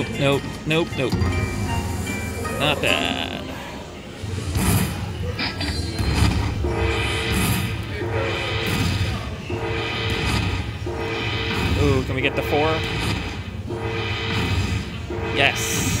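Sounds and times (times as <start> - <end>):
slot machine win tune: 0.0 - 4.4, 6.6 - 12.9.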